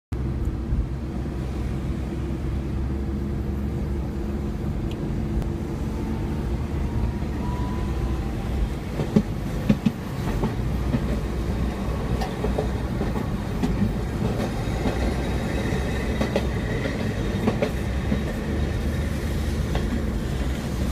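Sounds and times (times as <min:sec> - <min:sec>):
moving vehicle rumble: 0:00.1 - 0:20.9.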